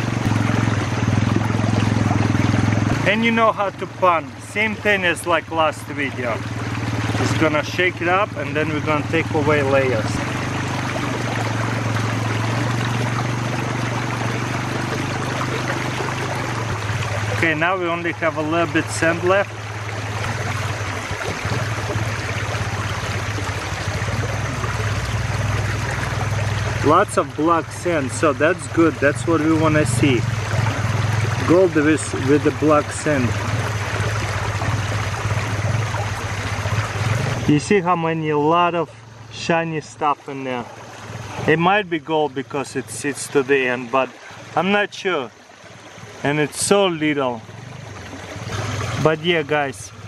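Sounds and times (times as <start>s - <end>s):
water washing through a pan: 0.0s - 37.7s
stream water rushing: 0.0s - 50.0s.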